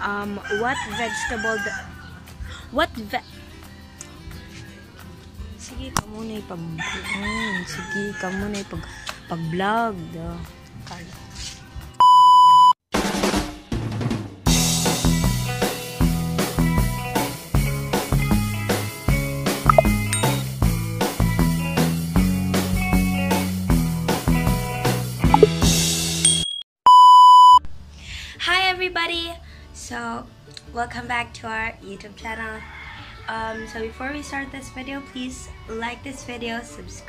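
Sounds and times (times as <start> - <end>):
electronic beep: 12.0 - 12.8, 19.7 - 20.4, 26.3 - 27.6.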